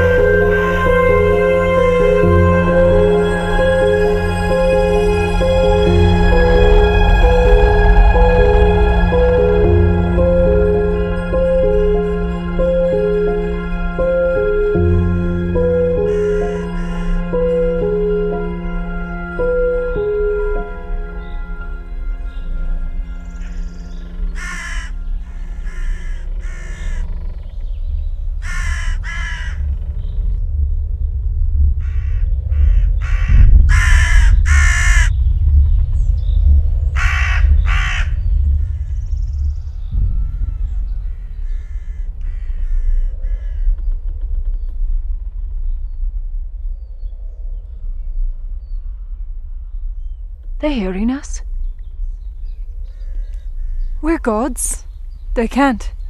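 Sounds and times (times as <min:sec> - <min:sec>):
soft musical tone: 0:00.0 - 0:24.4
deep rumbling drone: 0:00.0 - 0:56.0
crows cawing: 0:15.6 - 0:17.7, 0:24.3 - 0:27.4, 0:28.4 - 0:29.8, 0:31.8 - 0:35.2, 0:37.0 - 0:38.2, 0:40.2 - 0:43.8.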